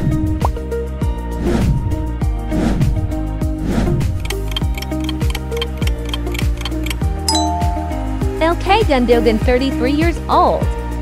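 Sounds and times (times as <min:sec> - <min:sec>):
background music with steady beat: 0:04.1 - 0:09.0
countdown ticks: 0:04.2 - 0:08.4
bright chime: 0:07.3 - 0:08.4.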